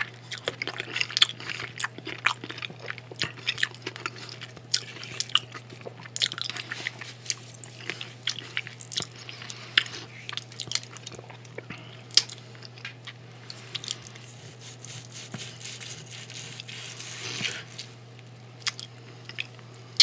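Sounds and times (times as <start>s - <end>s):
man chewing food: 0.0s - 20.0s
steady low hum: 0.0s - 20.0s.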